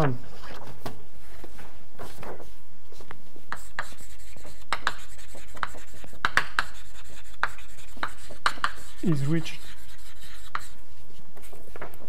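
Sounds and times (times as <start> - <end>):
chalk writing on a blackboard: 3.5 - 11.6.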